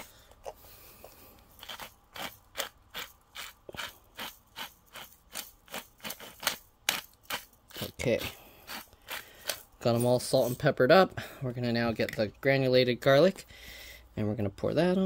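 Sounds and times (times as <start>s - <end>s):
pepper grinder grinding: 0.0s - 10.7s.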